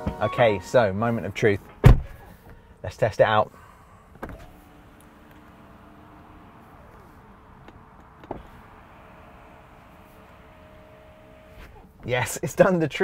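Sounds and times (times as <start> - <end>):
power window motor humming: 4.2 - 11.9.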